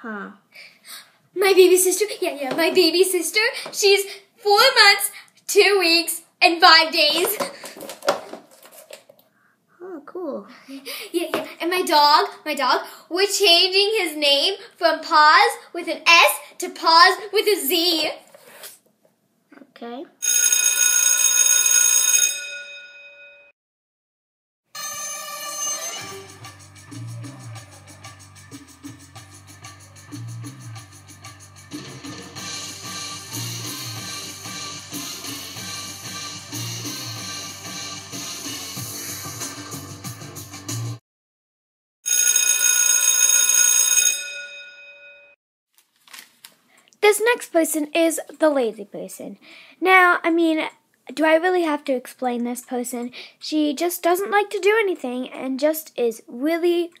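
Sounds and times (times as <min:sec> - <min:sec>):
electric school bell ringing: 0:20.2 - 0:23.5, 0:24.8 - 0:26.6, 0:42.1 - 0:45.4
bell-like ringing sound effect: 0:24.8 - 0:26.6
music with drum beat: 0:26.0 - 0:41.0.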